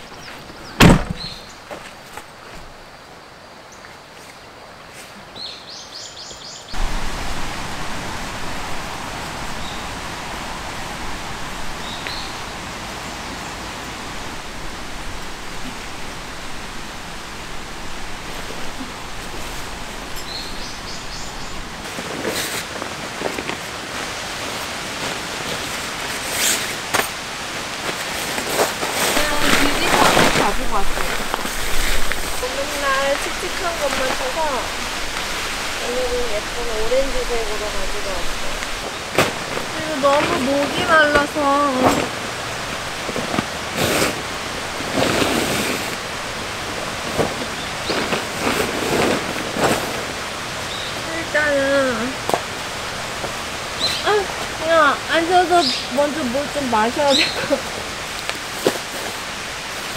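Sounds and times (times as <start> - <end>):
bird chirps: 0.0 - 1.6
stream running: 0.0 - 59.9
tarp rustling and crinkling: 6.7 - 59.9.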